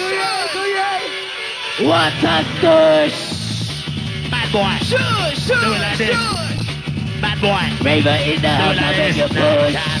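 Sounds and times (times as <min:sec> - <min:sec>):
hardcore rave music: 0:00.0 - 0:10.0.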